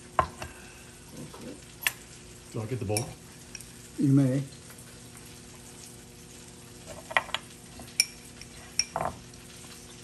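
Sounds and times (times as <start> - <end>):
faint steady hum: 0.0 - 10.0
spoons clinking on dishes: 2.9 - 3.7, 6.9 - 9.2.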